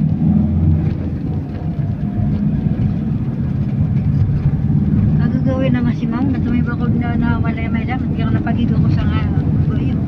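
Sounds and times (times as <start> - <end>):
vehicle engine and tyre rumble: 0.0 - 10.0.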